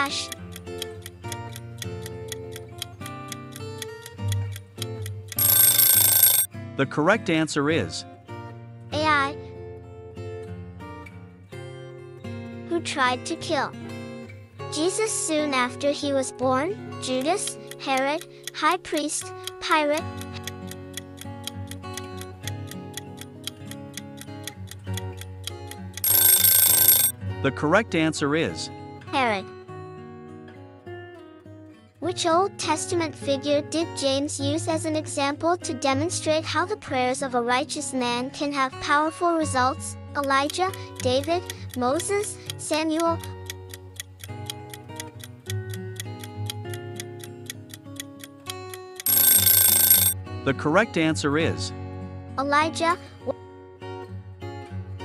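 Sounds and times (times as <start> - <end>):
clock-like timer ticking: 0.0 - 6.5, 17.1 - 27.1, 40.2 - 50.2
alarm ringing: 5.3 - 6.5, 26.0 - 27.1, 49.0 - 50.2.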